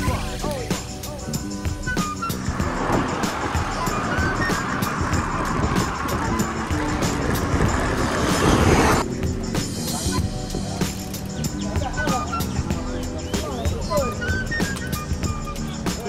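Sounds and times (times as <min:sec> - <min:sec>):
background music: 0:00.0 - 0:16.0
road noise: 0:01.0 - 0:16.0
car traffic: 0:01.4 - 0:09.2.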